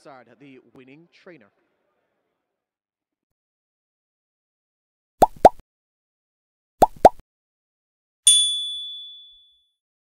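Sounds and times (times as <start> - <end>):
bright notification bell ding: 8.3 - 9.6.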